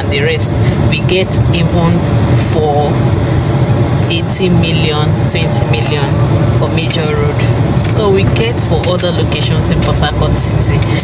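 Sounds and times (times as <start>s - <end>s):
woman talking: 0.0s - 3.1s, 4.0s - 11.0s
car cabin rumble: 0.0s - 11.0s.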